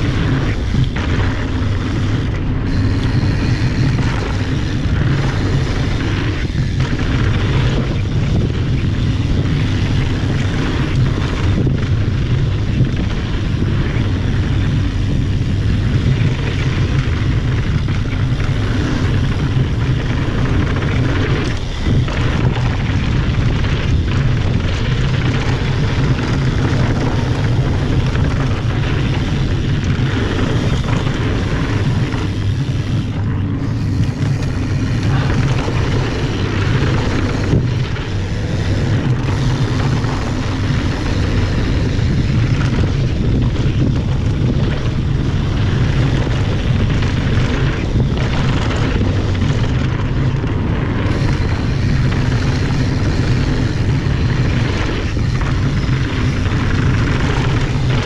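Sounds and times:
bike tyres rolling on dirt: 0.0 - 58.0
wind rushing over microphone: 0.0 - 58.0.

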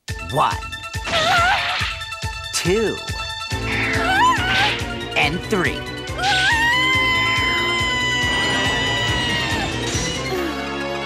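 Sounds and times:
dramatic background music: 0.1 - 11.0
woman screaming: 4.0 - 4.8, 6.2 - 9.8.

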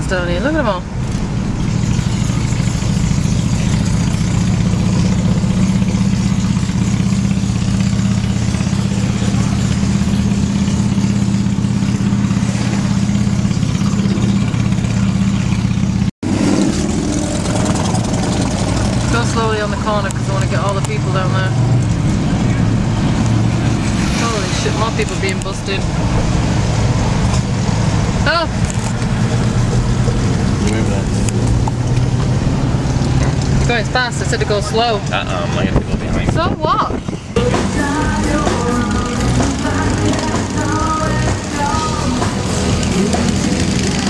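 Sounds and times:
car engine and road noise: 0.0 - 44.0.

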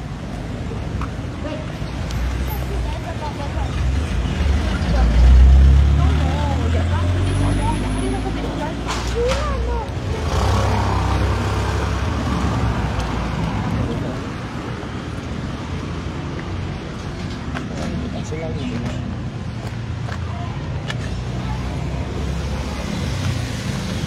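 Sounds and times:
passing road noise: 0.0 - 24.0
vehicle rumble: 0.0 - 24.0.

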